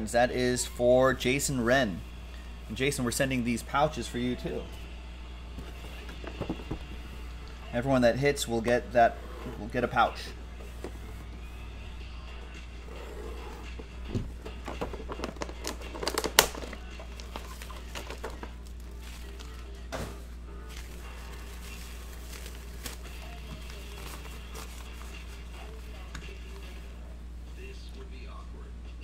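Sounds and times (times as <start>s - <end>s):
faint background music: 0.0s - 29.0s
low steady hum: 0.0s - 29.0s
metallic pouch crinkling: 14.9s - 25.9s.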